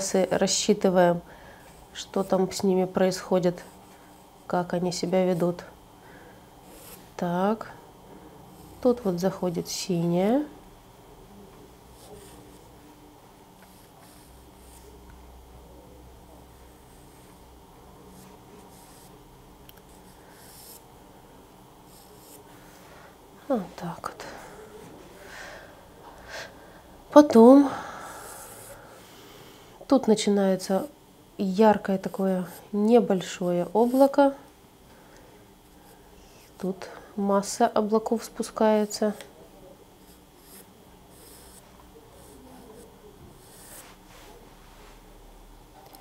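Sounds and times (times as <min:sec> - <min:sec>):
pencil strokes on paper: 0:06.6 - 0:07.2, 0:19.9 - 0:20.9, 0:21.9 - 0:22.8, 0:31.8 - 0:34.2, 0:40.0 - 0:44.4.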